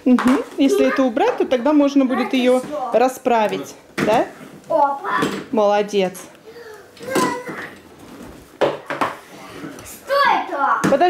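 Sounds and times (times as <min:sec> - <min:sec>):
children's voices: 0:00.6 - 0:03.0, 0:04.7 - 0:05.5, 0:06.4 - 0:07.8, 0:09.8 - 0:10.9.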